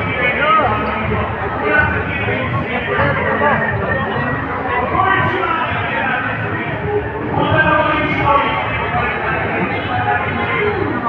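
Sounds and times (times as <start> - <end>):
crowd chatter: 0.0 - 11.0
music: 0.0 - 11.0.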